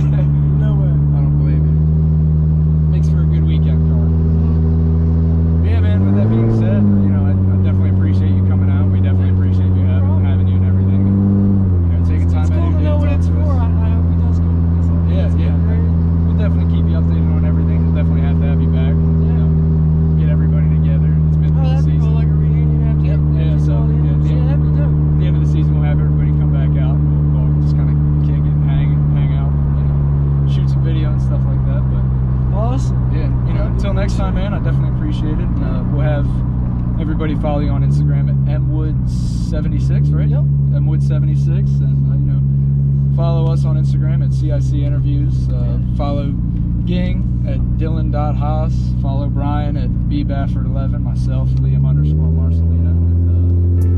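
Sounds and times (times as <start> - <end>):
car engine droning: 0.0 - 53.9.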